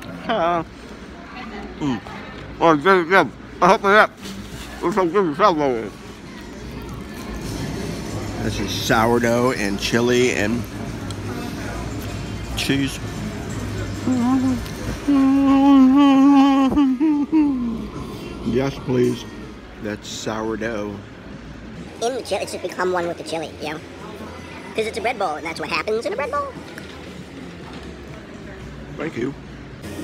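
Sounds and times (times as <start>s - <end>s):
man humming while eating: 14.0s - 18.0s.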